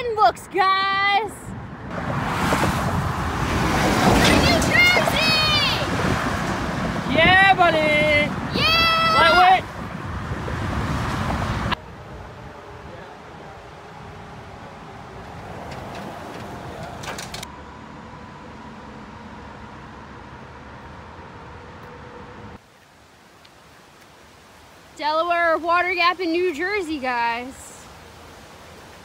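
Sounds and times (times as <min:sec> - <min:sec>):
road traffic noise: 0:00.0 - 0:29.0.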